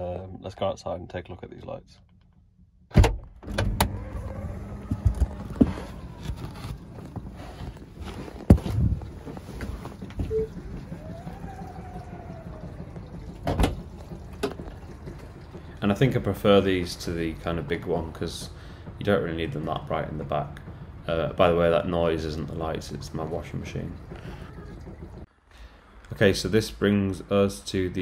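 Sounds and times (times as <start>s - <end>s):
low steady rumble: 0.0s - 28.0s
faint motor whine: 3.5s - 28.0s.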